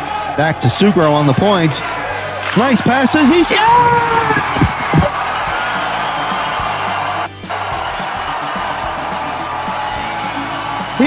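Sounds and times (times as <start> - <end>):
background music: 0.0 - 11.0
crowd cheering: 0.0 - 11.0.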